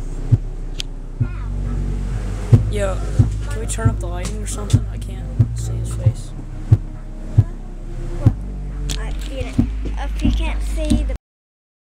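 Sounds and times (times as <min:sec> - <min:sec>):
deep bass hum from speaker: 0:00.0 - 0:11.2
sharp thumps: 0:00.0 - 0:11.2.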